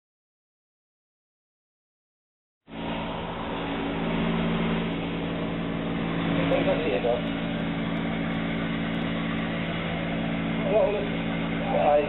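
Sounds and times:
engine drone: 2.7s - 12.0s.

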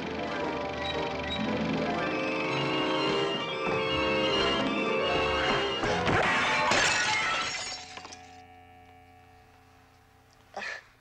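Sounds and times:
music: 0.0s - 10.5s
glass mirror smashing: 6.1s - 8.4s.

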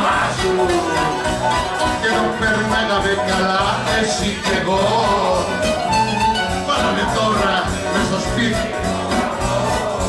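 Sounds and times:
man singing into microphone: 0.0s - 1.3s, 1.9s - 5.9s, 6.5s - 10.0s
live band music: 0.0s - 10.0s.

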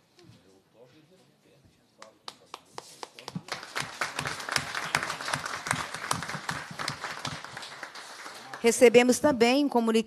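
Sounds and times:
audience applause: 3.2s - 9.0s.

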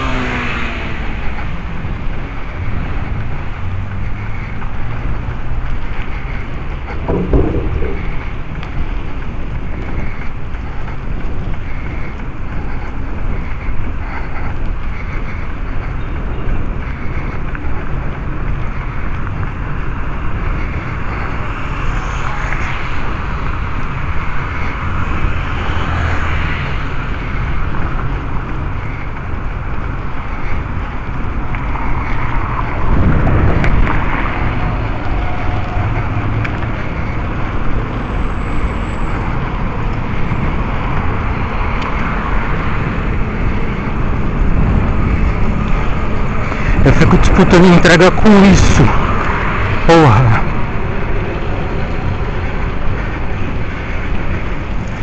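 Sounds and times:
traffic noise: 0.0s - 55.0s
tyres rumbling on pavement: 0.0s - 55.0s
wind rushing over microphone: 0.0s - 55.0s.

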